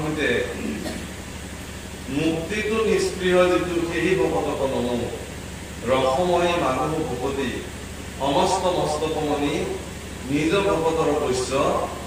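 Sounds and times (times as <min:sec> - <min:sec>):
man chanting a verse: 0:08.2 - 0:12.0.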